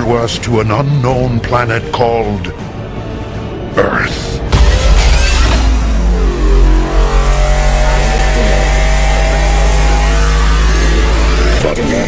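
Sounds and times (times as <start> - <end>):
deep bass: 4.5 - 12.0
engine-like sound effect: 4.5 - 12.0.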